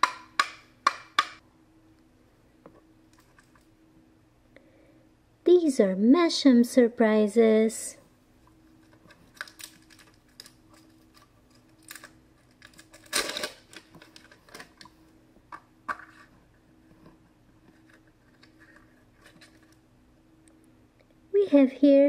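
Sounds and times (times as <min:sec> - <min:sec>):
plastic capsule clicks and crackles: 0:09.0 - 0:15.0.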